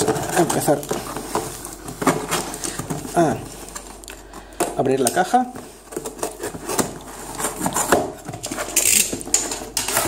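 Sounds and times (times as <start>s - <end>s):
cardboard scraping and rustling: 0.0s - 4.0s, 4.8s - 10.0s
knife slitting packing tape: 6.2s - 10.0s.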